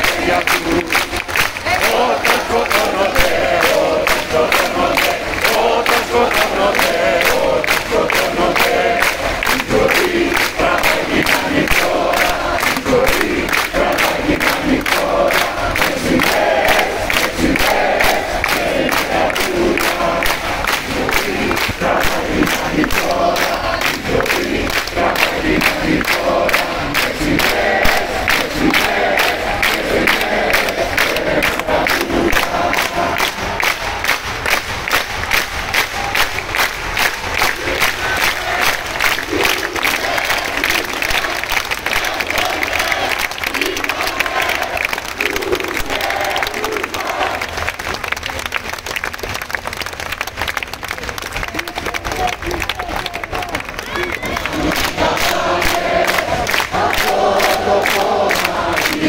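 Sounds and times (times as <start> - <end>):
crowd chanting: 0.0 - 48.0, 52.6 - 59.0
crowd clapping in rhythm: 0.0 - 59.0.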